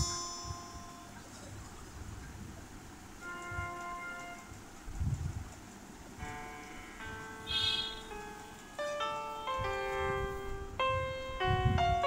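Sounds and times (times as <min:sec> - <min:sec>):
chime-like keyboard chords: 0:00.0 - 0:01.3, 0:06.2 - 0:12.0.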